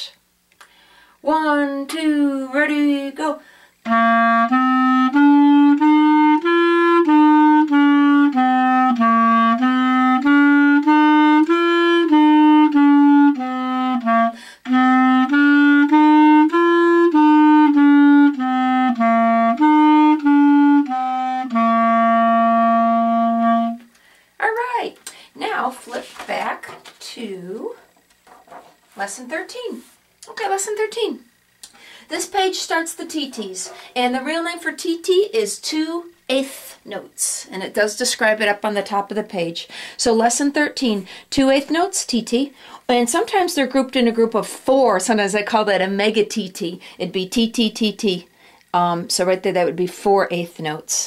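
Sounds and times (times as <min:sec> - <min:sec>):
solo clarinet playing scales: 0:03.8 - 0:24.0.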